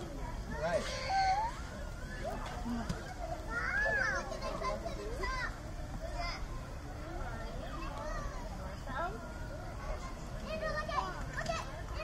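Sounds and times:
children talking and calling out: 0.0s - 12.0s
people chatting: 0.0s - 12.0s.

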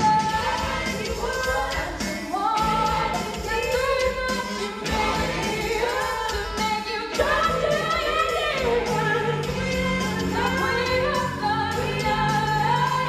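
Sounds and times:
musical accompaniment: 0.0s - 13.0s
woman singing into microphone: 0.0s - 13.0s.

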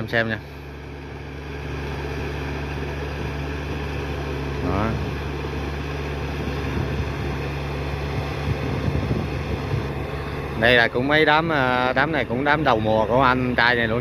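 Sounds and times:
tractor diesel engine running: 0.0s - 14.0s.

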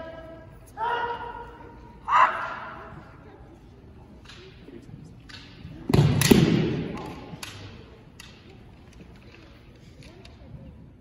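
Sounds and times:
hall echo: 0.0s - 3.5s
person shouting: 0.8s - 2.8s.

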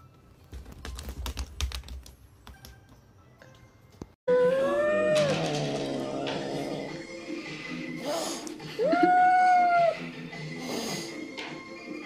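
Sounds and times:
cat yowling: 4.3s - 5.4s, 8.8s - 10.0s.

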